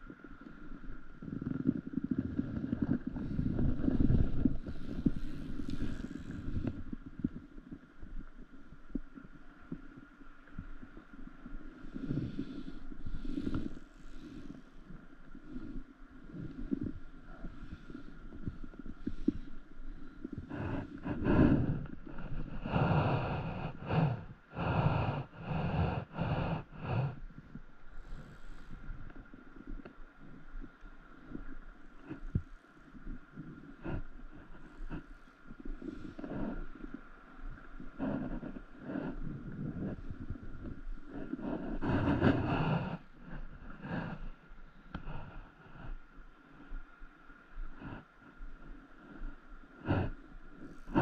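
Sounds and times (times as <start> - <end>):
wind rumbling on microphone: 0.0 - 51.0.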